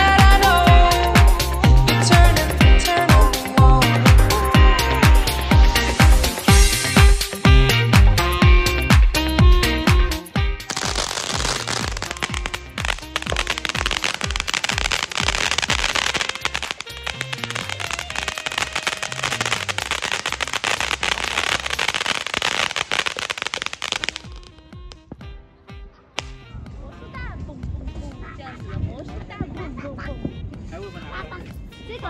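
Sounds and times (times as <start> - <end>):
background music with bass: 0.0 - 28.1
firework fountain crackling: 10.7 - 24.6.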